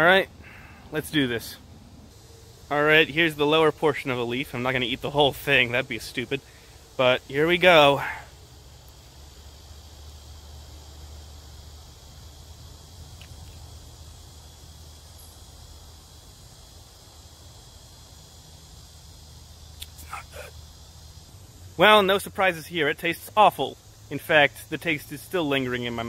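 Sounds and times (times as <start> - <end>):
high insect drone: 0.0 - 26.0.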